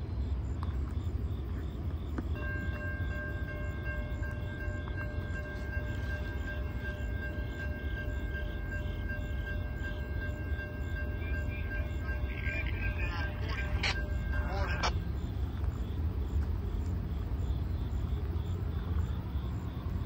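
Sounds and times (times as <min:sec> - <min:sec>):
faint pulsing ring: 0:02.3 - 0:16.2
train air horn chord: 0:02.4 - 0:15.0.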